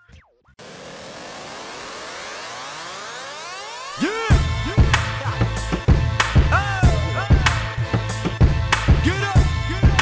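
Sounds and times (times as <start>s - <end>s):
electronic riser sweep: 0.6s - 5.3s.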